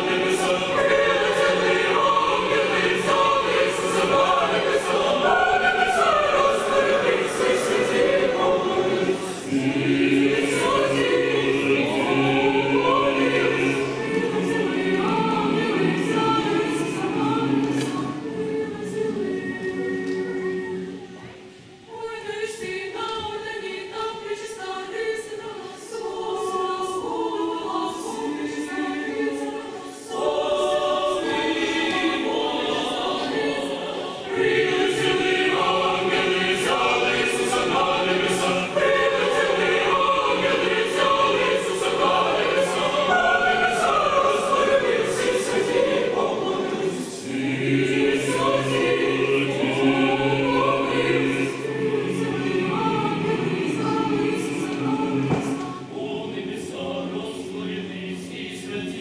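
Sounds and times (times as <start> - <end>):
mixed choir singing: 0.0 - 59.0.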